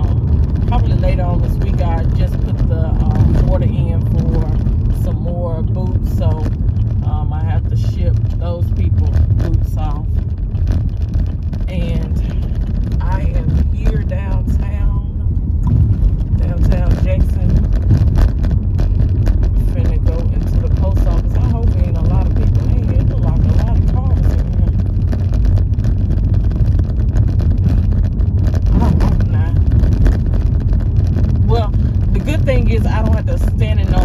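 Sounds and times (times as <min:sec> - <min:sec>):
car interior road and engine noise: 0:00.0 - 0:34.0.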